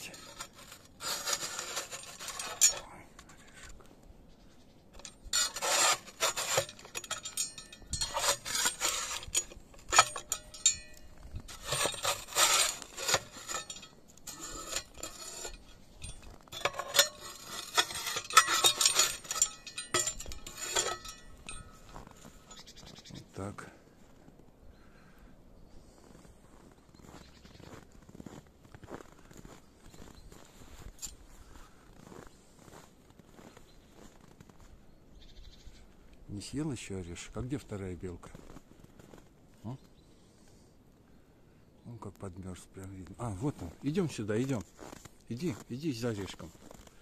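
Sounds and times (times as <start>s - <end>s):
metal shovel scraping snow off wood: 0.0s - 3.0s, 5.0s - 22.6s.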